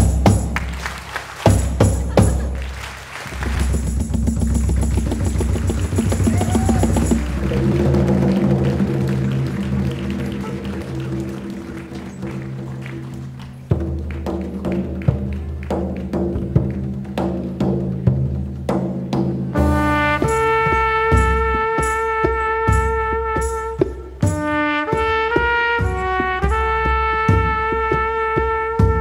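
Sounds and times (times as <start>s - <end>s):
light percussion: 0.0s - 29.0s
hand drum hits: 3.4s - 11.3s
double bass low notes: 27.6s - 29.0s
strong drum hit: 28.8s - 29.0s.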